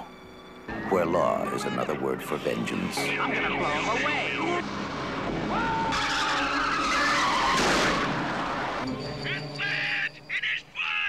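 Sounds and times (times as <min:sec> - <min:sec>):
car tyres squealing and skidding: 0:00.7 - 0:10.6
car engine: 0:03.0 - 0:09.6.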